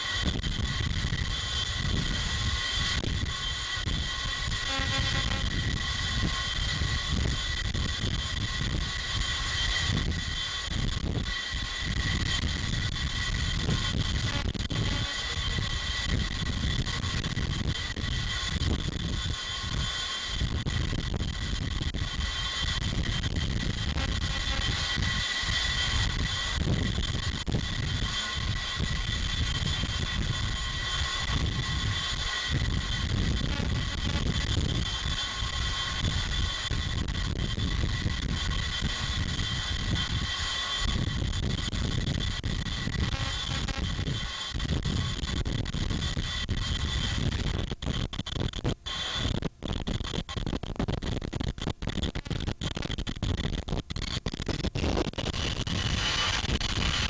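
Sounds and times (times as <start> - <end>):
jet engines running: 0.0 - 57.0.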